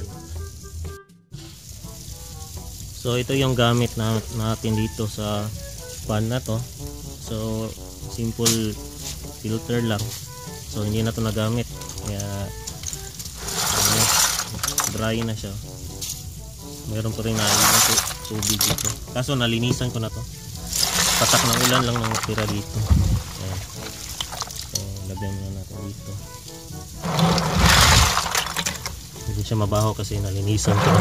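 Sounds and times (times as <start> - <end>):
net bag rattling in plastic bucket: 8.6 - 15.6, 16.7 - 25.2, 26.9 - 31.0
hand splashing water in bucket: 17.3 - 18.9, 20.7 - 24.7, 27.0 - 29.0.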